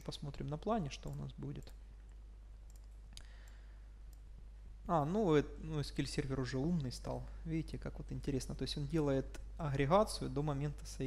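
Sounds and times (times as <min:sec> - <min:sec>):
man speaking: 0:00.0 - 0:01.8, 0:04.8 - 0:11.0.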